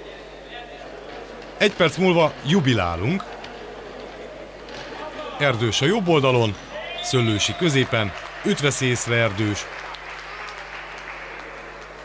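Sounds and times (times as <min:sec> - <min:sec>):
crowd noise: 0:00.0 - 0:12.0
light applause: 0:00.6 - 0:12.0.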